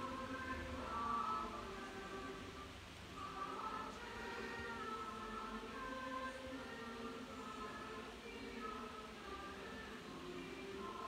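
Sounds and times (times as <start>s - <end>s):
faint choir chanting: 0.0s - 11.0s.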